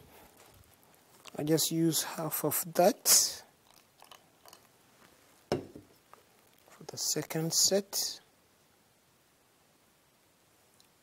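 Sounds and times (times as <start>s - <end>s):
glass beaker knocking on table: 5.5s - 5.9s.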